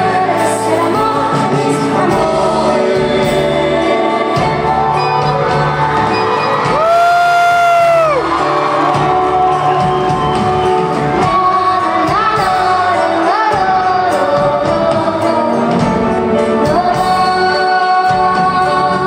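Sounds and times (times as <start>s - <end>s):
live band playing a slow bolero: 0.0s - 19.0s
crowd whooping and cheering: 4.6s - 13.3s.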